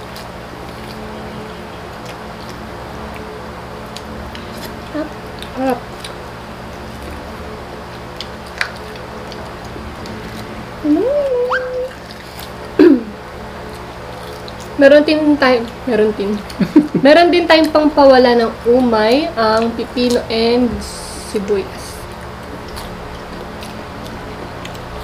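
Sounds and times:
faint eating sounds: 0.0 - 25.0
voice-like hum rising in pitch: 9.4 - 12.1.

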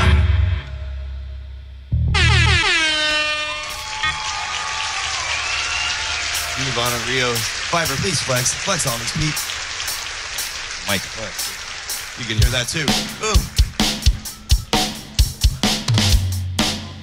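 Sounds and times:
loud horn blast falling in pitch: 2.1 - 4.0
person speaking: 12.2 - 13.6.

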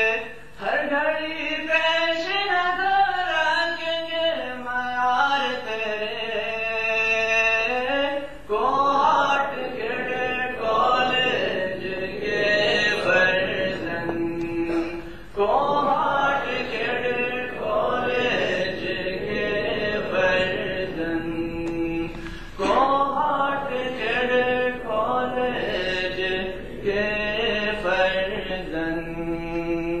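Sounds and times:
man chanting: 0.0 - 30.0
group singing in unison: 8.4 - 29.8.

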